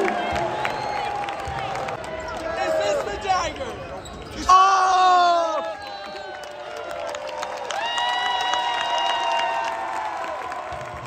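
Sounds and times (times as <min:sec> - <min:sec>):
crowd applauding and cheering: 0:00.0 - 0:03.2, 0:05.1 - 0:11.0.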